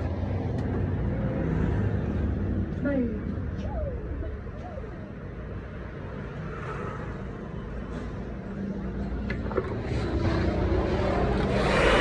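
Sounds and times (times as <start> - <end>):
rushing noise: 10.6 - 12.0.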